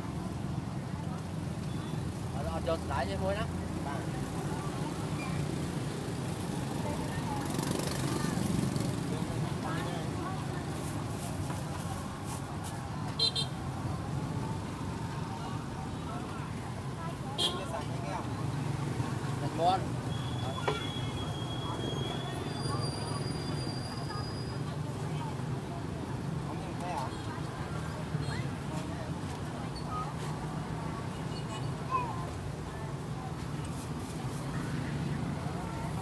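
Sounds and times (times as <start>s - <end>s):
traffic rumble: 0.0s - 36.0s.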